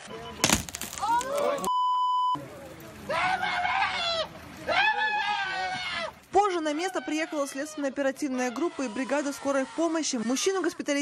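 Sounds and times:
censor bleep: 1.7 - 2.4.

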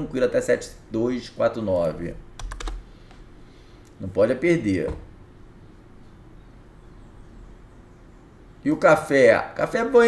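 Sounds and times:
computer keyboard keystrokes: 2.4 - 2.8.

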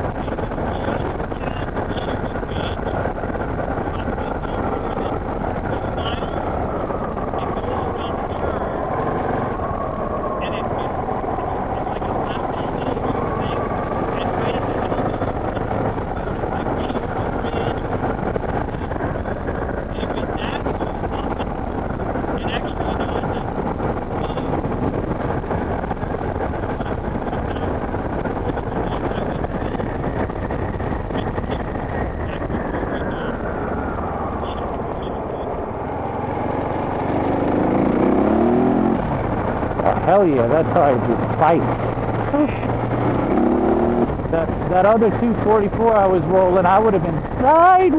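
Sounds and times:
motorcycle engine running: 0.0 - 47.9
wind rushing over microphone: 0.0 - 47.9.

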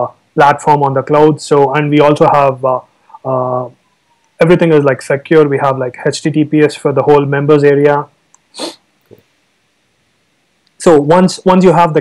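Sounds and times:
person exhaling: 8.5 - 8.8.

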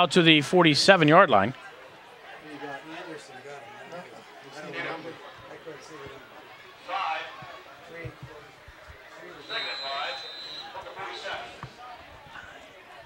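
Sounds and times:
voices shouting: 8.6 - 13.0
whistle blast: 9.4 - 11.3.

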